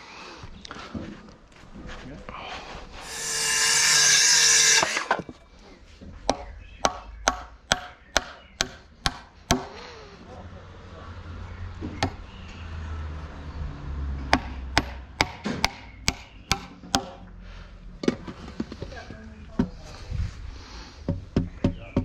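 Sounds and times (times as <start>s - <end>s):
hammer driving nail into wood: 3.0s - 5.2s, 14.3s - 17.2s
power tool hiss: 3.0s - 5.2s.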